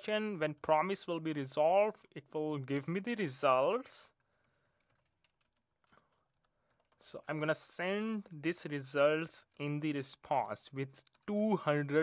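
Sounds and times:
faint keyboard typing: 2.0 - 12.0.

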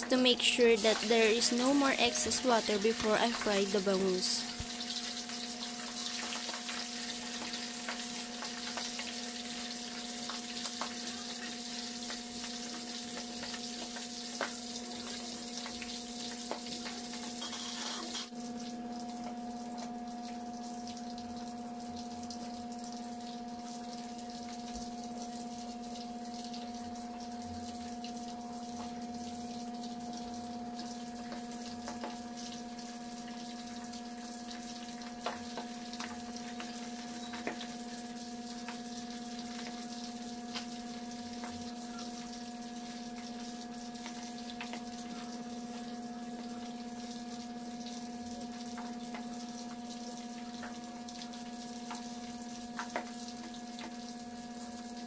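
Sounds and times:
fish sizzling in oil: 0.1 - 55.0.

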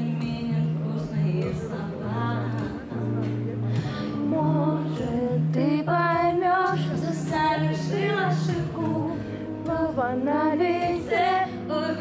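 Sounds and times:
plucked acoustic guitar: 0.0 - 12.0
woman singing into a microphone: 0.0 - 12.0.

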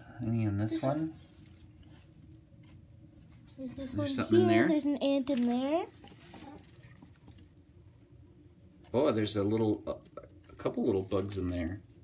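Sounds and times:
faint rustling of plant: 0.2 - 7.6, 8.8 - 12.0.

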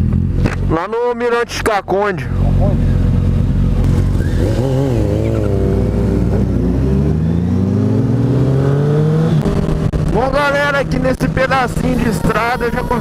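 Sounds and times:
motorcycle engine accelerating: 0.0 - 1.6, 2.2 - 13.0.

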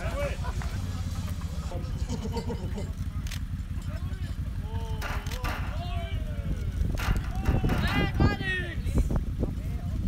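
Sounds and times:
people talking: 0.0 - 10.0
steady low rumble: 0.0 - 10.0.

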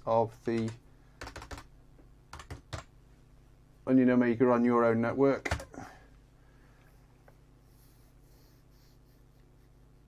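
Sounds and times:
typing on computer keyboard: 0.6 - 1.7, 2.3 - 2.9.

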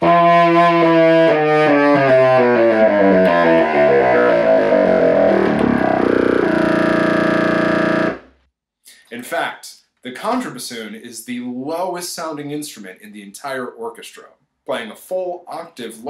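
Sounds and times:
contrabassoon playing descending scale: 0.0 - 8.2.

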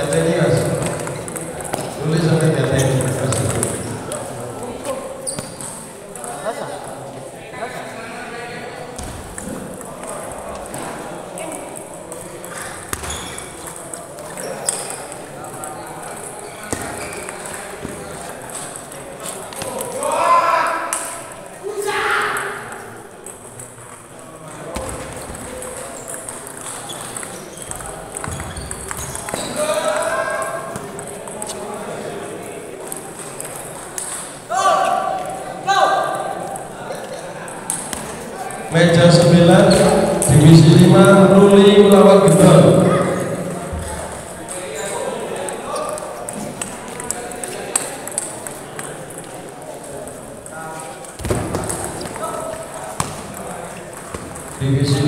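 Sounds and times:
people's voices and shouts: 19.6 - 22.8, 34.5 - 36.9, 38.7 - 46.5.

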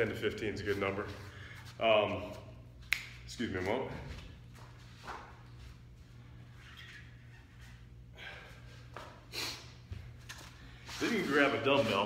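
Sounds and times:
faint room hum: 0.0 - 12.0
soft movement noises: 0.0 - 12.0.

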